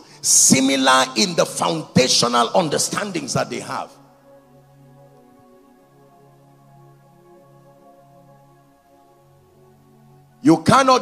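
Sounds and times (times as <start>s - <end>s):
ambient pad chords: 0.0s - 11.0s.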